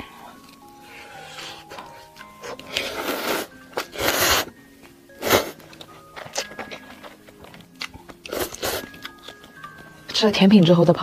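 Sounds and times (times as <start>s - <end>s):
noodles slurped and chewed: 0.9s - 4.6s, 5.2s - 9.5s.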